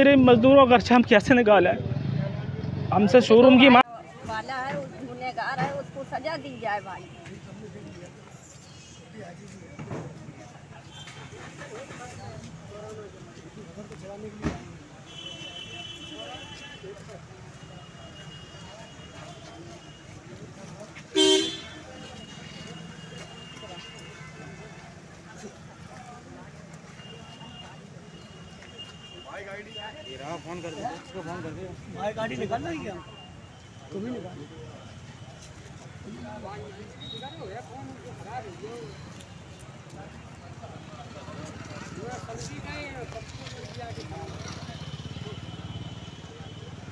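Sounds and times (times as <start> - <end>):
murmur of voices: 0.0 - 46.9
vehicle horn beep: 21.1 - 24.6, 37.0 - 37.5.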